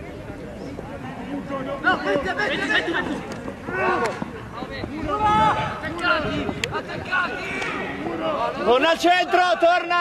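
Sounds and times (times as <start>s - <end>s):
voices shouting: 1.6s - 10.0s.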